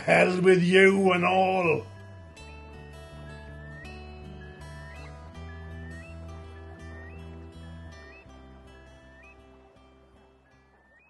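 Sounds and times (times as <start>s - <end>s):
curlew whistled call: 0.0s - 2.0s, 3.2s - 11.0s
soft music of low chords: 0.0s - 11.0s.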